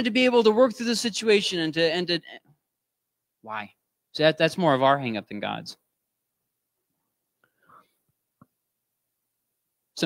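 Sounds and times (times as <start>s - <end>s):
faint breath: 7.4s - 8.1s.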